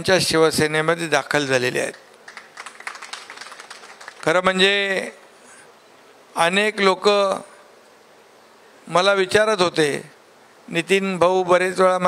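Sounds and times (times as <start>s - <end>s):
audience clapping: 1.9s - 4.7s.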